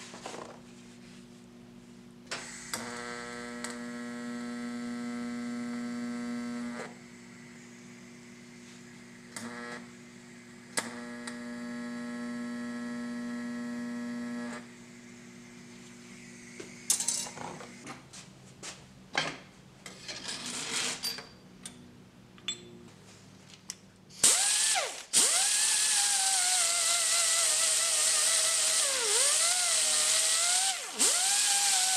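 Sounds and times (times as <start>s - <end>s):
welding arc buzzing: 2.3s - 15.3s, 24.2s - 31.9s.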